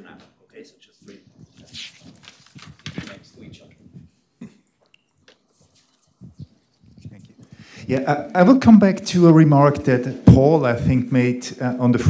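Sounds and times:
soft footsteps: 5.2 - 8.2.

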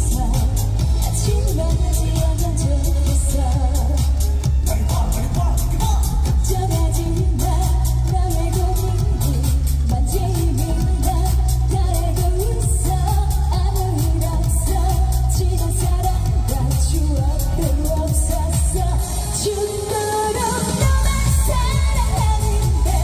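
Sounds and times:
woman singing into microphone: 0.0 - 4.6, 5.8 - 23.0
dance-pop backing track: 0.0 - 23.0.

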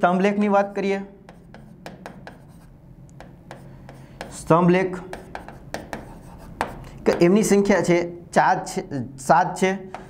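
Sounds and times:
marker pen scratching on board: 0.6 - 7.5.

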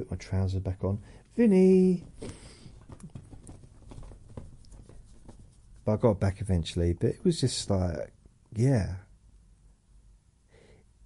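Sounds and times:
low room noise: 0.0 - 11.0
faint clicks and taps: 2.0 - 5.9.

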